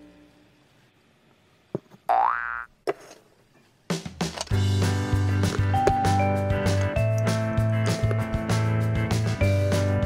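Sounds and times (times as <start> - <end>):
cartoon boing sound effect: 2.1 - 2.7
background music: 4.1 - 10.0.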